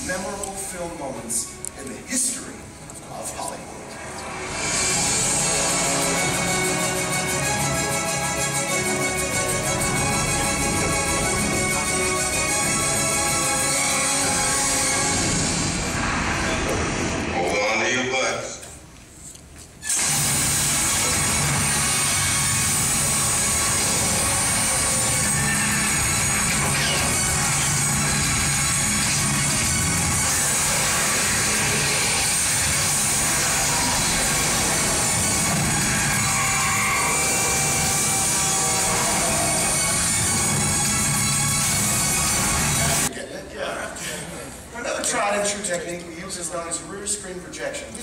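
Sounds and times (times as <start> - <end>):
soundtrack music with sound effects: 0.0 - 18.3, 19.8 - 43.1.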